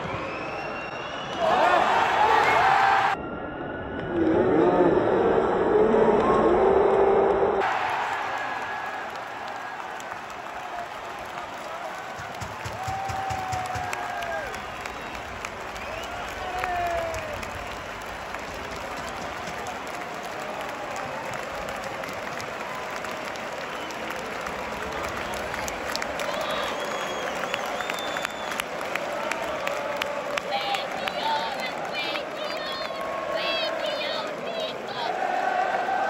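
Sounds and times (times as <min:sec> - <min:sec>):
stadium crowd cheering: 0:00.0 - 0:36.0.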